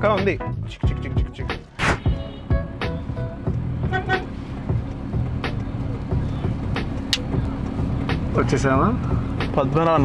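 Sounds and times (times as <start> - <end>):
car engine idling: 1.5 - 10.0.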